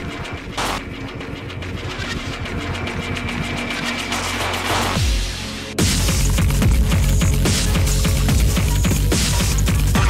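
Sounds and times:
rapid clicking glitch percussion: 0.0 - 5.2, 5.8 - 10.0.

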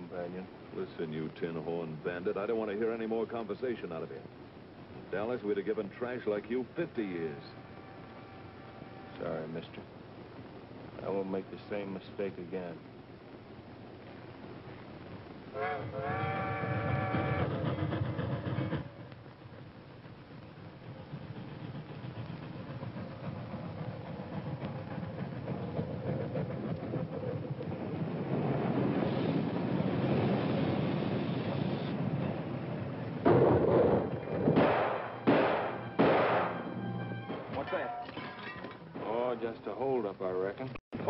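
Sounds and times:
steam train rumble: 0.0 - 38.0
loud sharp bangs: 33.2 - 38.1.

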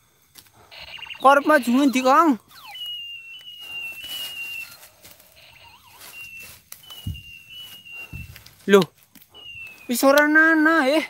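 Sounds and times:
footsteps rustling on forest floor: 0.2 - 11.0
thin high whistling tone: 0.7 - 11.0.

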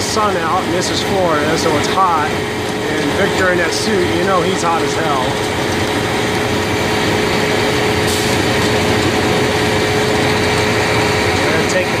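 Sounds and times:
belt conveyor running: 0.0 - 12.0
engine running: 0.0 - 12.0
steady hum: 0.0 - 12.0.

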